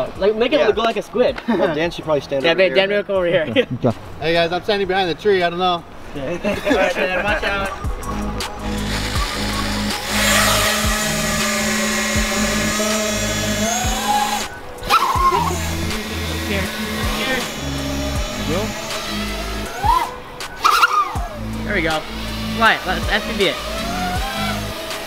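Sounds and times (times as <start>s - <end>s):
background music: 0.0s - 25.0s
quadcopter motors buzzing: 6.5s - 25.0s.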